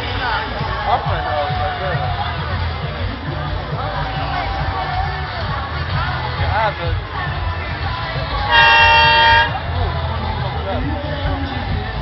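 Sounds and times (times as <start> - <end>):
crowd chatter: 0.0 - 12.0
loud horn blast: 8.5 - 9.6.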